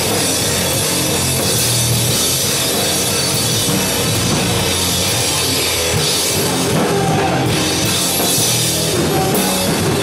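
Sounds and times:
bass guitar: 0.0s - 10.0s
drum kit with cymbals: 0.0s - 10.0s
rock band playing live: 0.0s - 10.0s.

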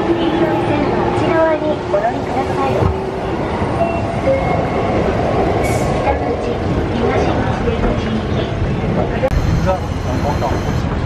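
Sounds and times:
train rumbling: 0.0s - 11.0s.

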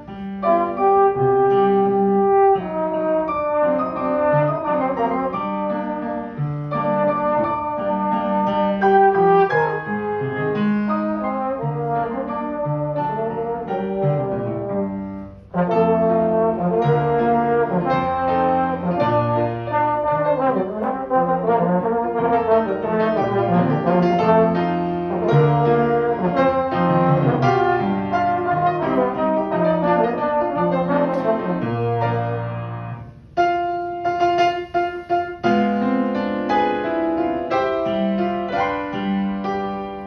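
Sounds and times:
piano accompaniment: 0.0s - 40.0s
slide trombone melody: 0.0s - 40.0s.

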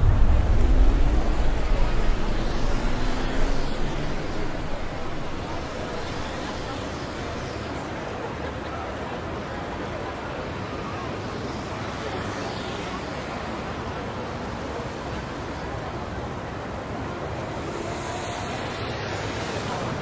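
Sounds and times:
faint voices: 0.0s - 20.0s
traffic noise: 0.0s - 20.0s.

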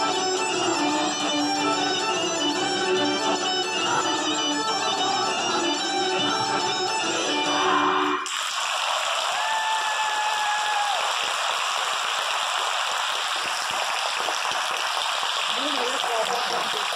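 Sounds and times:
audience applauding: 8.2s - 16.9s.

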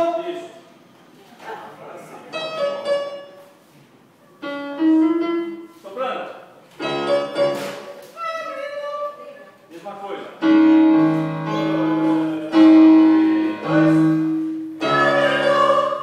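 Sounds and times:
electronic keyboard piano melody: 2.3s - 3.4s, 4.4s - 5.7s, 6.8s - 7.8s, 10.4s - 16.0s.

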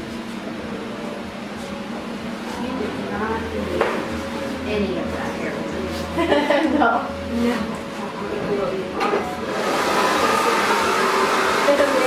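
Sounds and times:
hair dryer blowing: 9.1s - 12.0s.

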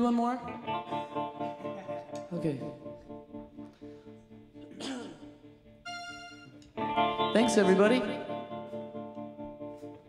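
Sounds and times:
held amplified instrument tones: 0.5s - 10.0s
band playing loud: 4.6s - 8.9s.

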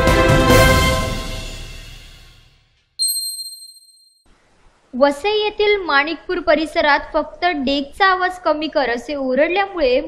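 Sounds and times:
news intro theme music: 0.0s - 2.5s
bright chime: 3.0s - 4.2s.

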